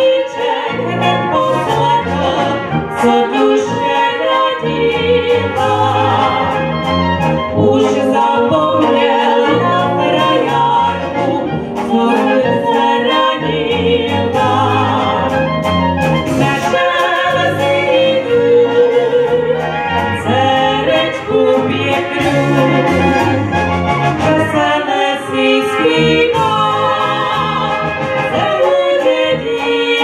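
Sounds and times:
women singing: 0:00.0 - 0:15.6, 0:16.3 - 0:23.4, 0:24.2 - 0:30.0
brass band playing: 0:00.0 - 0:30.0
tuba bass line: 0:00.0 - 0:30.0.

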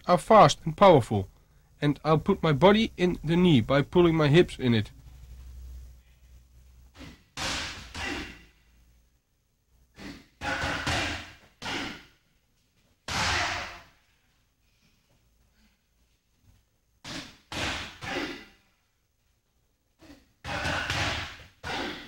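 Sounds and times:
strikes landing on pads: 0:07.4 - 0:08.4, 0:10.4 - 0:12.0, 0:13.1 - 0:13.8, 0:20.4 - 0:22.0.

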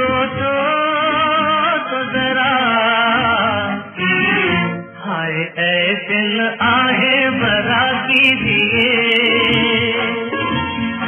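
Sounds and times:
person singing with instruments: 0:00.0 - 0:11.0.

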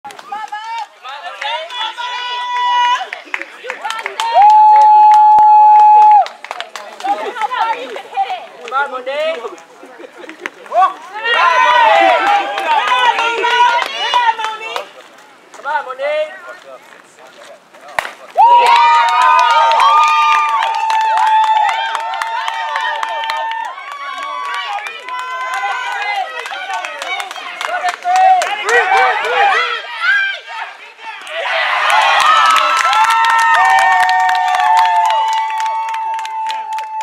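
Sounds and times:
voices shouting: 0:10.7 - 0:14.9, 0:18.4 - 0:34.7
bat cracking against ball: 0:17.9 - 0:18.3.

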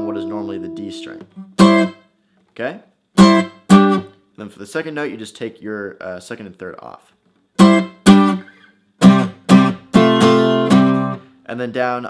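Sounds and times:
acoustic guitar strumming: 0:00.0 - 0:02.1, 0:03.2 - 0:04.2, 0:07.6 - 0:11.3.

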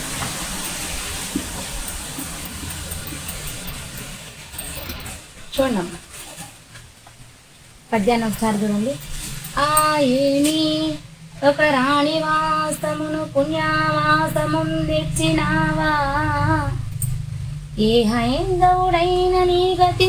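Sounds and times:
woman singing a slow chant: 0:08.8 - 0:17.0, 0:17.8 - 0:20.0.

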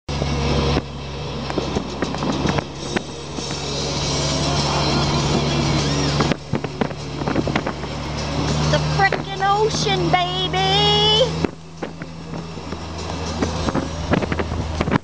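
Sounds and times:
car engine and road hum: 0:00.1 - 0:15.0
road noise rush: 0:00.1 - 0:15.0.

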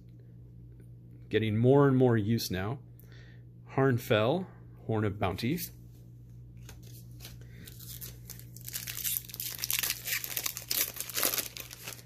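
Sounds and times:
faint steady hum: 0:00.0 - 0:12.0
foil wrapper tearing and crinkling: 0:07.7 - 0:12.0.

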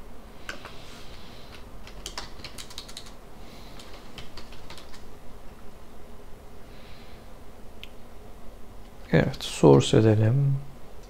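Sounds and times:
typing on computer keyboard: 0:01.8 - 0:03.2, 0:03.8 - 0:05.1.

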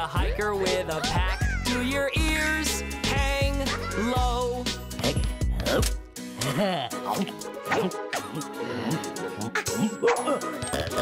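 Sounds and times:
cartoon wordless vocal sounds: 0:00.0 - 0:10.0
upbeat music with drum beat: 0:00.0 - 0:11.0.

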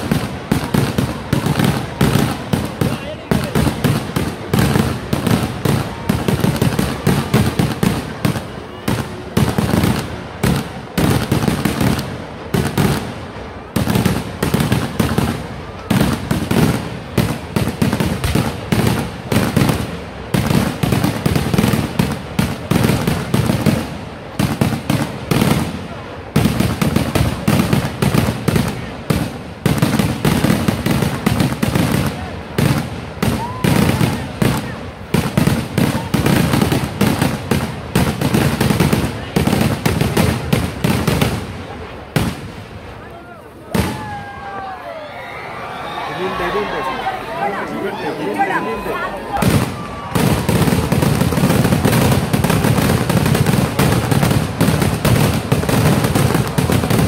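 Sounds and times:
fireworks bangs: 0:00.0 - 0:57.0.

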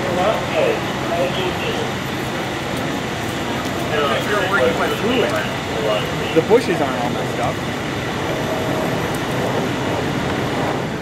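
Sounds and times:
people talking: 0:00.0 - 0:02.0, 0:03.5 - 0:07.6
vehicle engines droning: 0:00.0 - 0:11.0.

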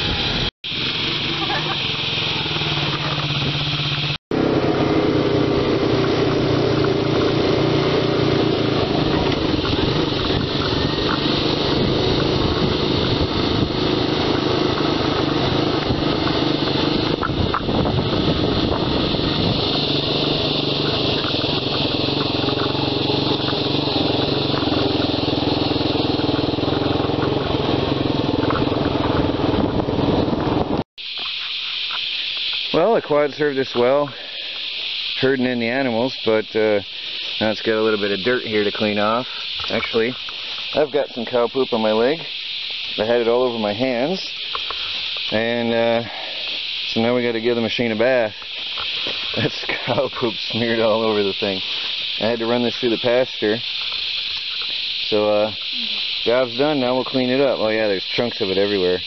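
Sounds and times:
quad bike engine running: 0:00.0 - 0:30.8, 0:35.2 - 0:59.0.

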